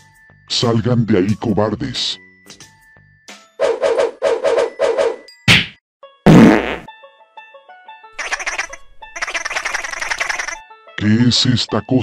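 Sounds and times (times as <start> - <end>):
fast chattering run: 8.2 - 10.6
stuttering cartoon buzz: 8.2 - 10.6.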